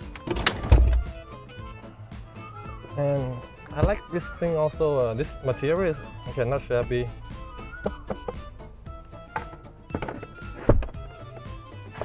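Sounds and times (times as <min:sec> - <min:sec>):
background music: 0:00.0 - 0:12.0
car floor panel thudding: 0:07.7 - 0:08.6, 0:09.2 - 0:12.0.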